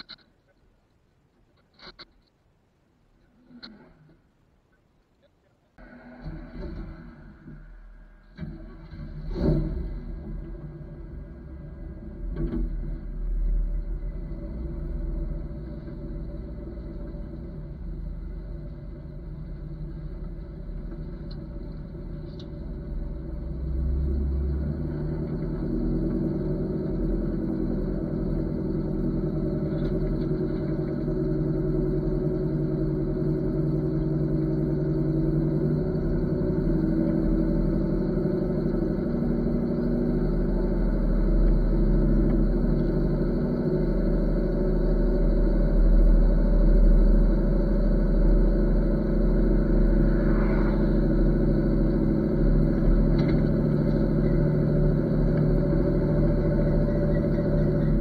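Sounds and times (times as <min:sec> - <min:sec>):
rumbling road noise: 0:00.0 - 0:58.0
truck engine running under load: 0:05.8 - 0:58.0.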